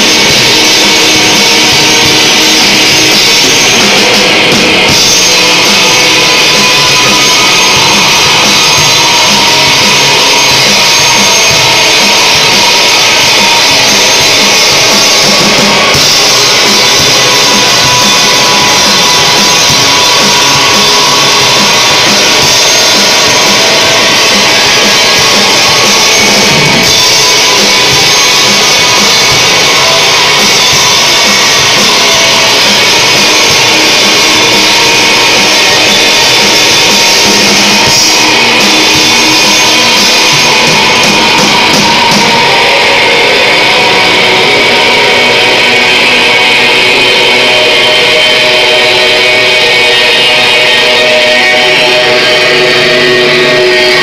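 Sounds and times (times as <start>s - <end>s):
drum kit: 0.0s - 54.0s
electric guitars: 0.0s - 54.0s.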